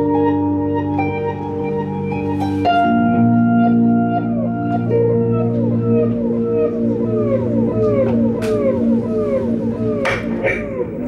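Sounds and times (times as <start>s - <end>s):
sustained low drone: 0.9s - 11.0s.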